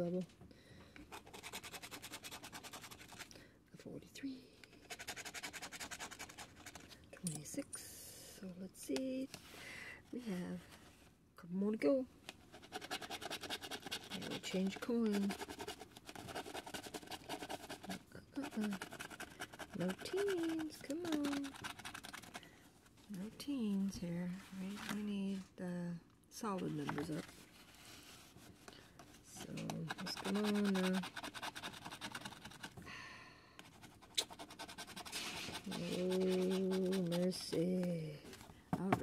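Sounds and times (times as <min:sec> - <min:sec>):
coin scraping scratch card: 0:01.2 - 0:03.2, 0:04.8 - 0:06.9, 0:12.6 - 0:22.4, 0:29.5 - 0:32.7, 0:34.0 - 0:37.7
short breath: 0:09.5 - 0:10.0
coin scraping scratch-off ticket: 0:16.4 - 0:22.2.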